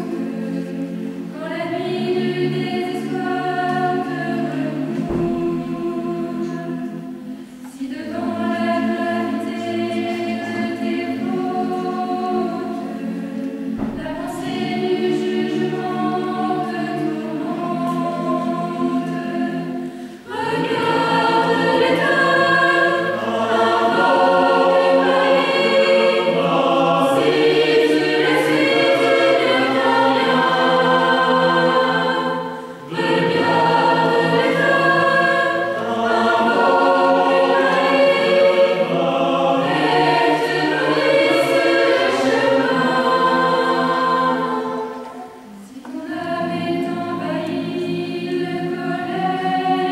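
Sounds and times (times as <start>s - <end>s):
mixed choir singing in parts: 0.0s - 49.9s.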